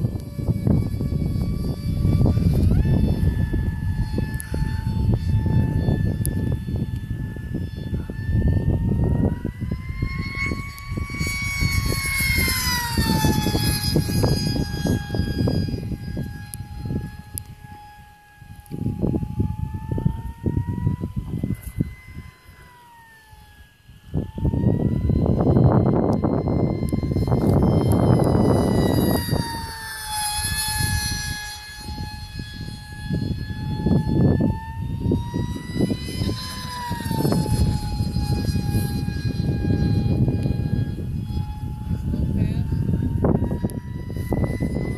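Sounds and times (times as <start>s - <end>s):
electric aircraft motor whine: 0.0s - 44.9s
wind rumble on microphone: 0.0s - 44.9s.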